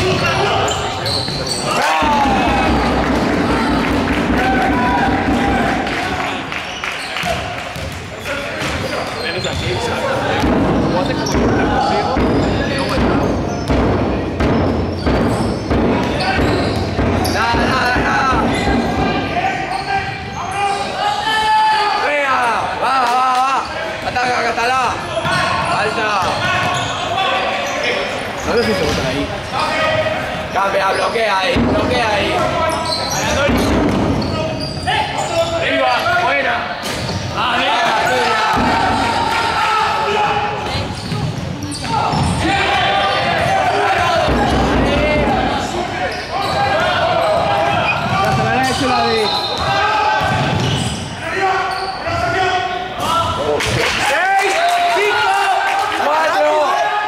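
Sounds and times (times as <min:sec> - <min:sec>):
voices and shouts: 0:00.0 - 0:13.8, 0:15.4 - 0:57.0.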